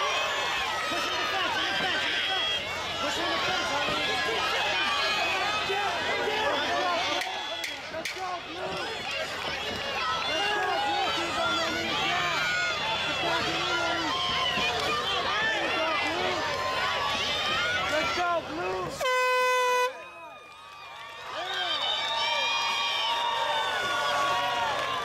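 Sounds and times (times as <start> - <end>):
crowd shouting: 0.0 - 25.0
air horn blast: 19.0 - 20.0.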